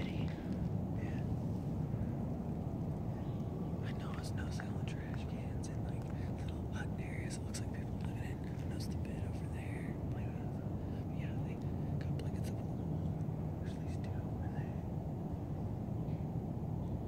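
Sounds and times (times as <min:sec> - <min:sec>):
low rumbling noise: 0:00.0 - 0:17.0.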